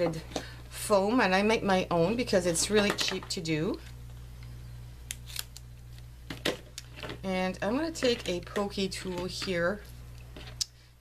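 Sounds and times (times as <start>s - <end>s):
scissors snipping tape: 5.1s - 5.6s.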